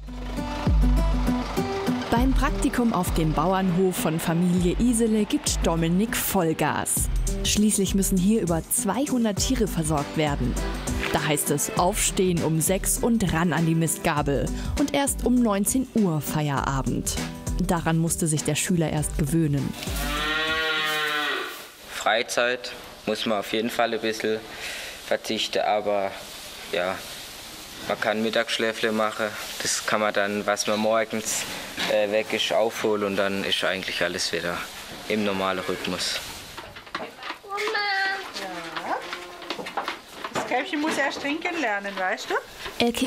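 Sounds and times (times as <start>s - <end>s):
cow mooing: 19.8s - 21.7s
calf bawling: 37.6s - 39.8s.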